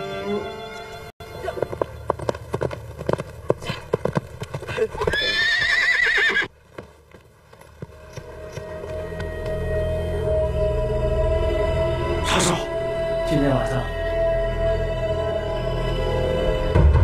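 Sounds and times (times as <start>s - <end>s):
horse hoofbeats clattering: 1.3s - 9.6s
horse whinnying: 5.0s - 6.5s.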